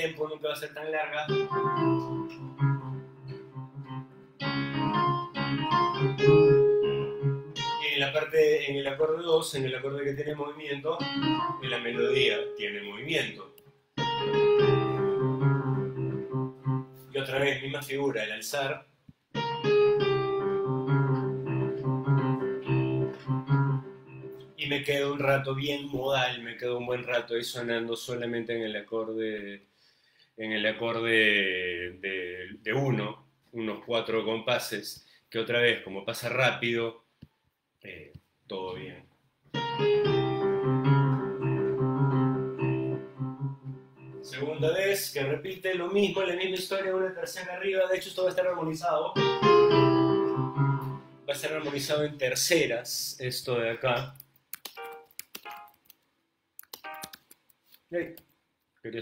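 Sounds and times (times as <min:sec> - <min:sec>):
midi music playback: 0:00.0 - 0:09.0, 0:09.6 - 0:17.3, 0:19.4 - 0:25.6, 0:39.5 - 0:45.9, 0:48.3 - 0:52.2, 0:54.7 - 0:55.8, 0:56.7 - 0:57.4
repeating bass line: 0:39.9 - 0:44.8.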